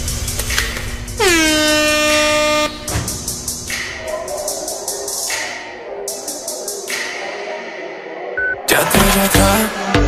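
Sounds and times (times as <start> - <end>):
air horn blast: 1.2 - 2.9.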